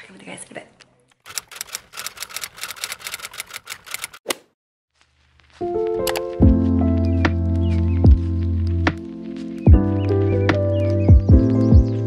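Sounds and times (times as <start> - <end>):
typewriter key clacks: 1.3 - 4.2
music: 5.6 - 12.0.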